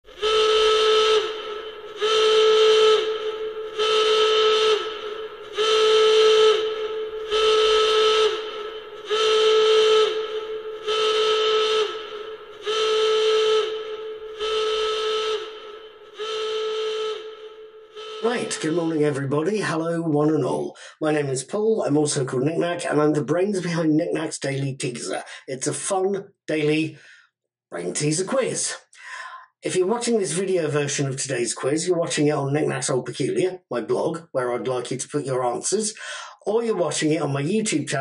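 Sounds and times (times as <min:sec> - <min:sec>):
whistle blasts: 0:00.1 - 0:19.0.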